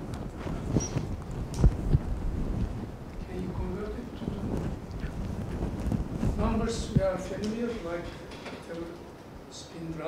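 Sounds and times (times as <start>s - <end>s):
clothing rustle: 0.0s - 8.3s.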